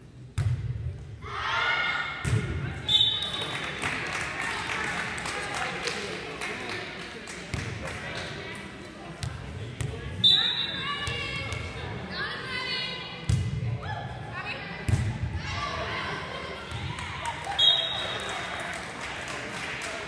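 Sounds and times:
referee's whistle: 0:02.9 - 0:03.5, 0:10.2 - 0:10.8, 0:17.6 - 0:18.3.

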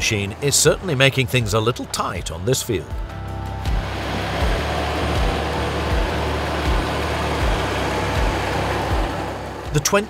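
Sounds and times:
tractor engine drone: 0:00.0 - 0:10.0.

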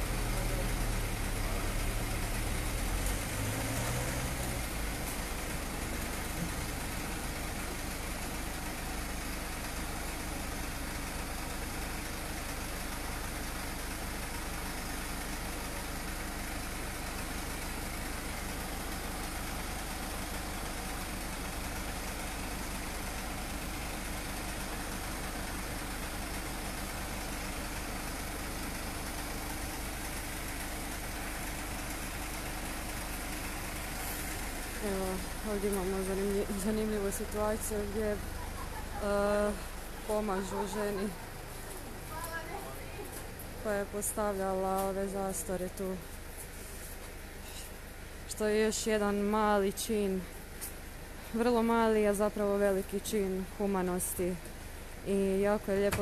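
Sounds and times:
van engine idling: 0:00.0 - 0:56.0.

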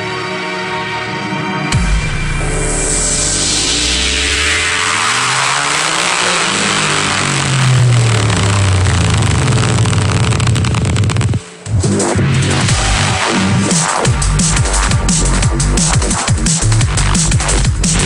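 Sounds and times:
deep sliding bass: 0:01.7 - 0:18.0
electronic dance music: 0:01.7 - 0:18.0
falling noise sweep: 0:02.5 - 0:15.0.

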